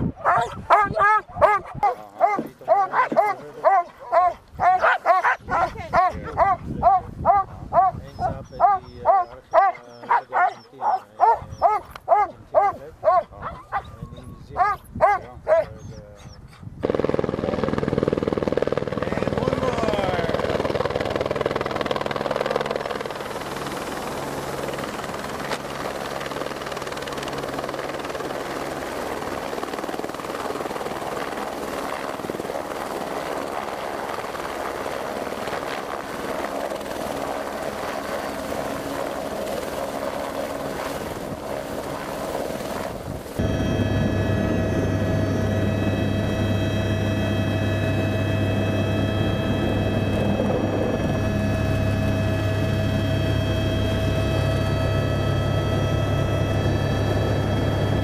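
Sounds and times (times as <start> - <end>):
helicopter hovering: 0.0 - 16.1, 16.8 - 58.0
dogs barking and yelping: 0.0 - 16.7.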